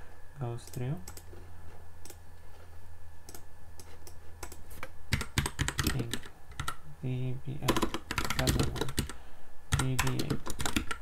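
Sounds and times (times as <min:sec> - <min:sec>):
computer keyboard typing: 0:00.7 - 0:01.3, 0:03.3 - 0:06.8, 0:07.6 - 0:11.0.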